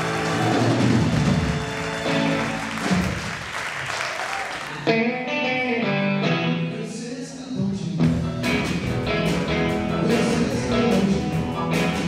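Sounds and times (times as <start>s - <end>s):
applause: 0.0s - 4.8s
live band with electric guitar: 0.0s - 12.0s
plucked guitar notes: 4.8s - 6.7s, 8.0s - 12.0s.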